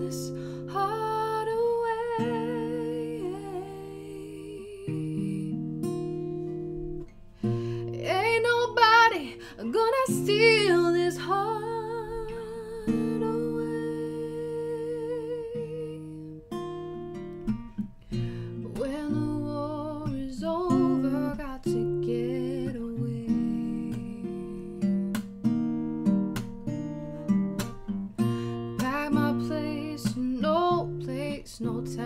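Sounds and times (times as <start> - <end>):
woman singing softly: 0.0 - 6.2, 7.8 - 16.6, 18.5 - 25.3, 28.5 - 32.0
acoustic guitar strumming: 0.0 - 32.0.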